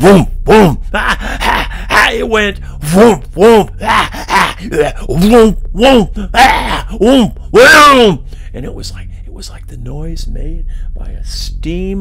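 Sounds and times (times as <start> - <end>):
man making hooting vocal effects: 0.0 - 8.2.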